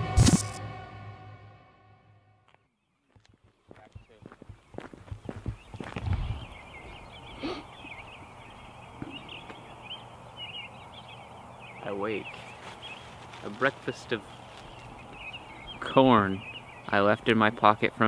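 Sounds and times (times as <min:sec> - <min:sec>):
high twittering chirps: 0:03.1 - 0:18.0.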